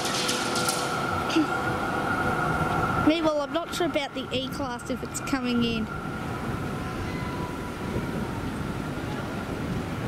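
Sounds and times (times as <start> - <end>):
tram running on track: 0.0 - 10.0.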